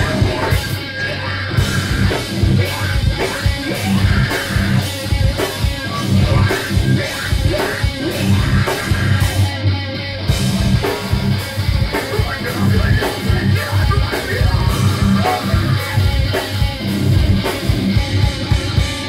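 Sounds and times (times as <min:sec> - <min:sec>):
electric guitar riffs: 0:00.0 - 0:19.0.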